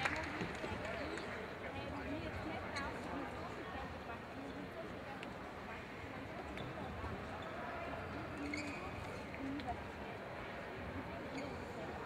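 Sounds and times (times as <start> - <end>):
murmur of voices: 0.0 - 12.0
shoe squeaks on court floor: 8.3 - 9.3.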